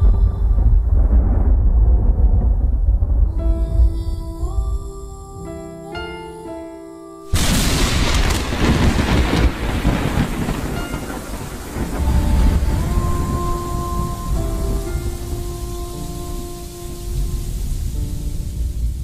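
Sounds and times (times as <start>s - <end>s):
thunder rolling: 0.0s - 5.1s, 7.3s - 19.0s
intro music held notes: 3.3s - 19.0s
rain hiss: 7.3s - 19.0s.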